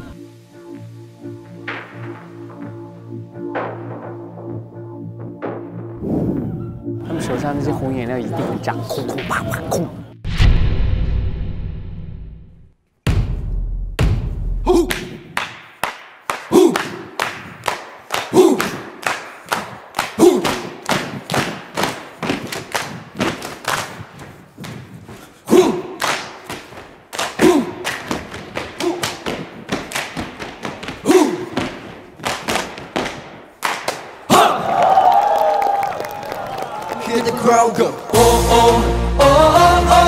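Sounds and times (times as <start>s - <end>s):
music: 0.0s - 10.4s, 38.1s - 40.0s
deep drum hit: 10.3s - 12.4s, 13.1s - 14.7s
claps and stomps: 14.0s - 24.9s, 25.8s - 38.2s.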